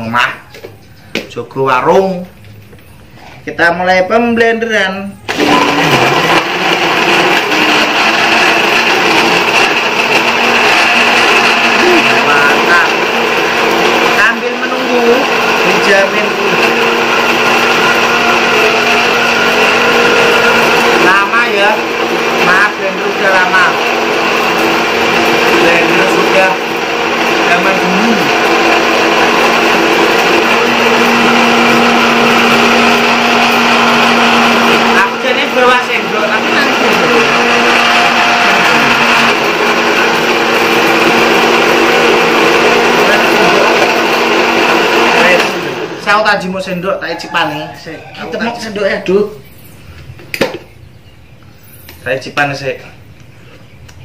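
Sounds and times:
blender running: 5.3 - 47.4.

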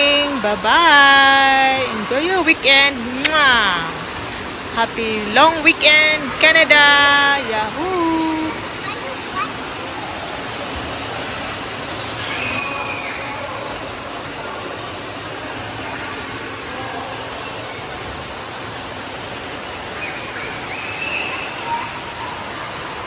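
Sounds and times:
water splashing and spouting: 0.0 - 23.0
children shouting: 12.0 - 13.8, 19.9 - 23.0.

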